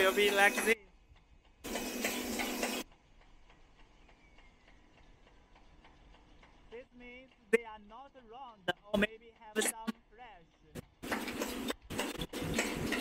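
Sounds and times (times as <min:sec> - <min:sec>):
machinery ticking: 0:00.0 - 0:13.0.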